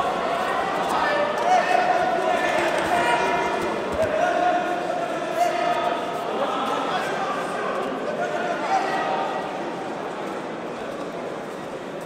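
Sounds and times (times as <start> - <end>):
voices shouting in a hall: 0.0 - 11.3.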